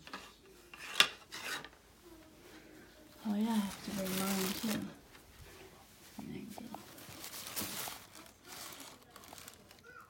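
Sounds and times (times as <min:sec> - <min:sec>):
objects rubbing and scraping: 0:00.0 - 0:01.8.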